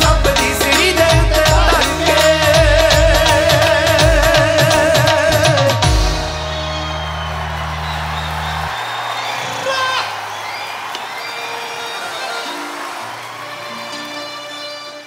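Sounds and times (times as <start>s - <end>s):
crowd cheering and applauding: 5.8s - 15.0s
crowd whooping: 6.0s - 15.0s.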